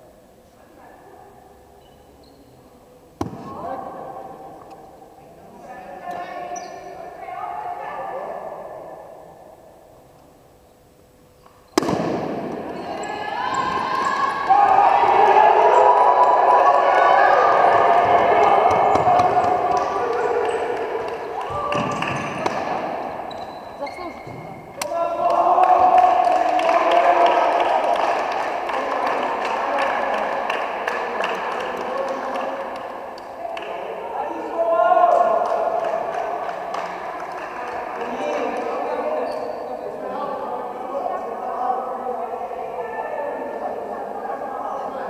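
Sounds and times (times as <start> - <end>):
sports hall hum: 0.0 - 45.0
bat hitting a ball: 11.8 - 12.6
voices: 11.8 - 45.0.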